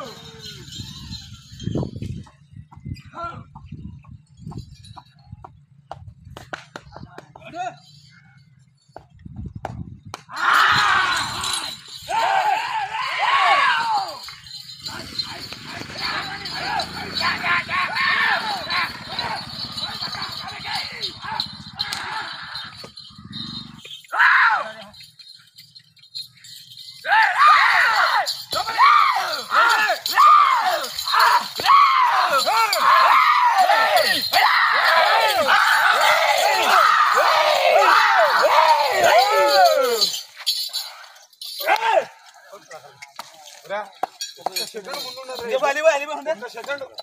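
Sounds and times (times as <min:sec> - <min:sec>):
men shouting and whooping: 0:10.3 - 0:23.4, 0:24.1 - 0:25.0, 0:27.0 - 0:40.9, 0:41.5 - 0:42.2
sharp clicks and clinks: 0:11.1 - 0:47.0.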